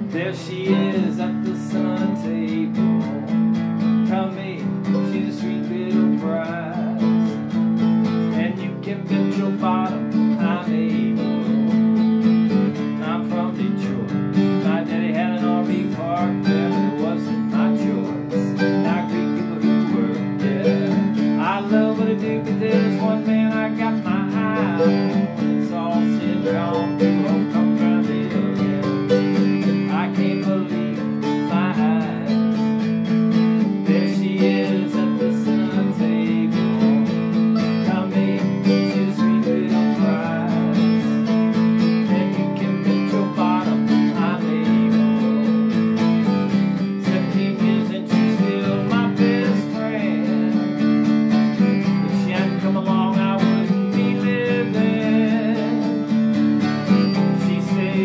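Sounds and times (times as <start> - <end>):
acoustic guitar strumming: 0.0 - 58.0
fast picked mandolin melody: 0.0 - 58.0.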